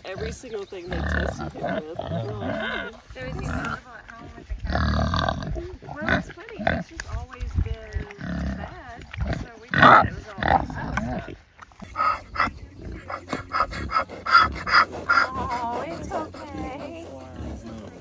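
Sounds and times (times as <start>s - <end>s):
pigs grunting: 0.0s - 18.0s.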